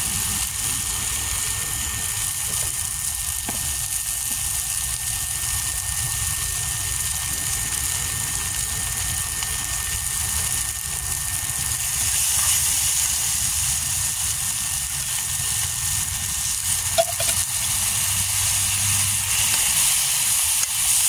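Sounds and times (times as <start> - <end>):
vegetables sizzling in a pan: 0.0 - 21.0
metal spoon clink: 17.0 - 17.4.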